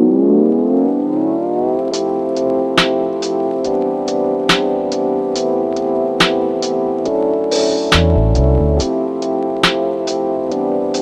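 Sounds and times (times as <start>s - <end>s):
electronic music: 0.6s - 11.0s
rising synthesizer chord: 7.9s - 8.9s.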